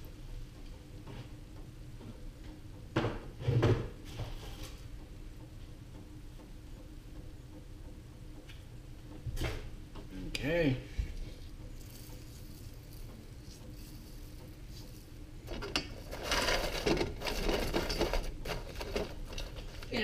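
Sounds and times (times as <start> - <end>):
popcorn kernels rustling: 11.7 - 20.0.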